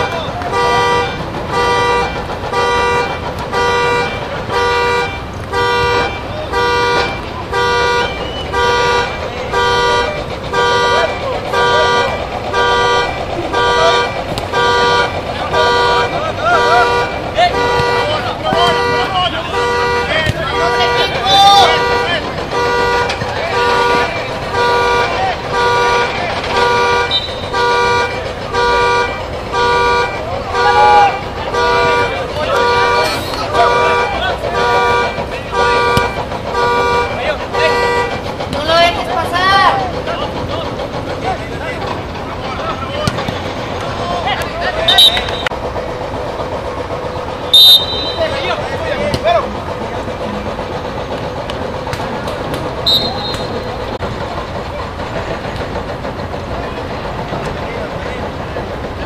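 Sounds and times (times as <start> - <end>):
car horn two-note blasts: 0.0 - 38.1, 44.9 - 45.5, 47.5 - 48.4
people shouting: 0.0 - 45.5.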